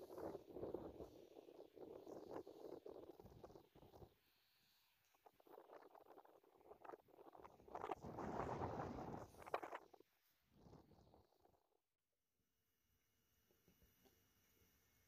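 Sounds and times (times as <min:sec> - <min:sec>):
wind rumbling on microphone: 0:00.0 - 0:04.2, 0:05.1 - 0:11.6.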